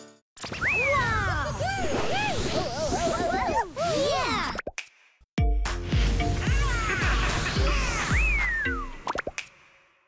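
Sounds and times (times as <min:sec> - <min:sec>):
music: 0:05.4 - 0:10.0
cartoon plops with falling pitch: 0:08.3 - 0:09.4.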